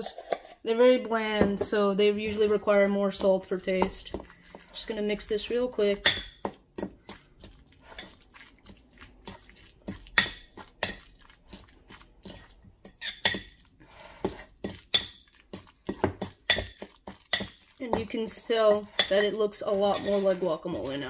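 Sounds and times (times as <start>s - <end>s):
fork scraping ceramic bowl: 0.0s - 0.6s, 6.0s - 21.0s.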